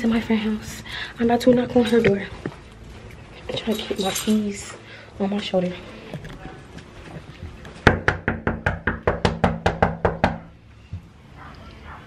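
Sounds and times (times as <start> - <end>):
knuckles knocking on door: 7.9 - 10.4.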